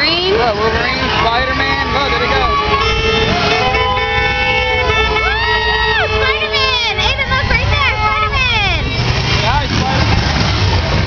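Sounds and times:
engine rumble: 0.0 - 11.0
long horn tones: 1.0 - 7.3.

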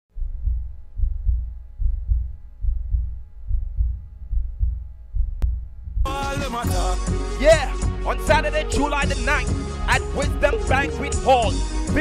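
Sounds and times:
heartbeat thumps: 0.1 - 6.1.

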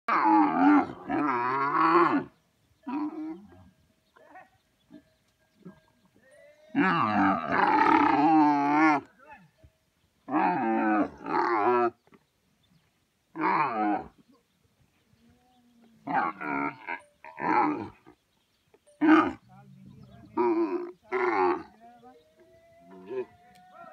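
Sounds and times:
camel calling: 0.1 - 9.2, 15.2 - 23.9
camel grunts: 19.0 - 21.8.

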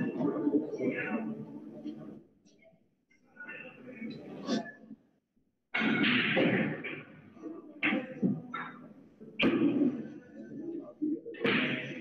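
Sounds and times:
faint background murmur: 0.0 - 12.0.

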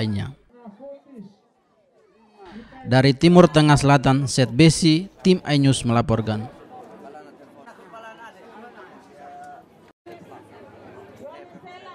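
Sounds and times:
crowd chatter: 0.0 - 11.9.

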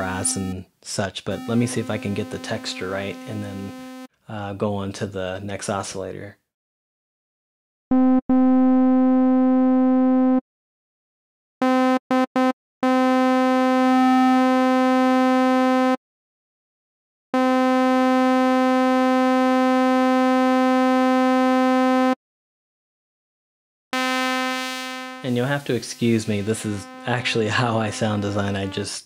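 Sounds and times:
buzzy square-wave synthesizer tone: 0.0 - 0.6, 1.3 - 4.1, 24.0 - 29.0.

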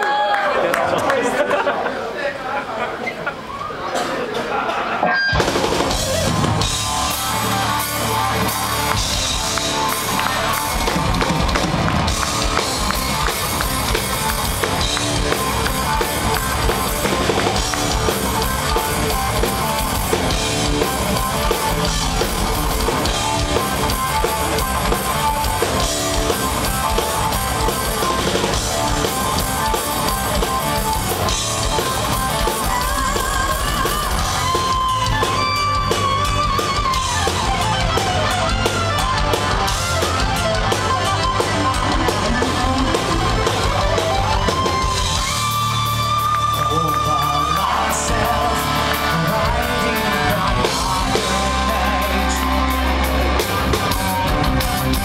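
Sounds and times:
heavy metal band playing live: 5.0 - 55.0.

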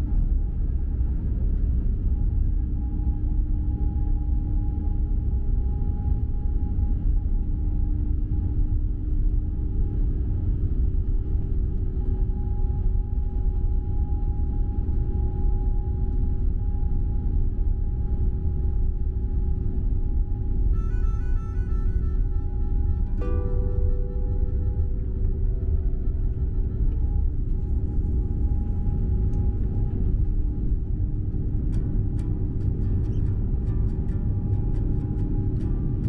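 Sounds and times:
music with plucked notes: 20.9 - 25.4.

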